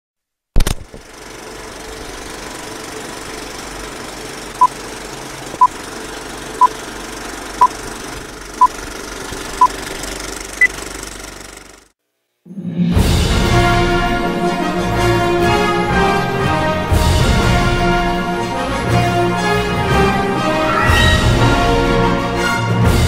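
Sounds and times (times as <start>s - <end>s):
film projector rattling: 0.6s - 11.9s.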